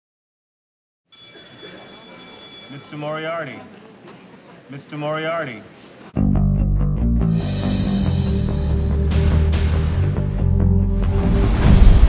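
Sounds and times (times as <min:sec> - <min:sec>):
electric bell ringing: 0:01.1 - 0:03.1.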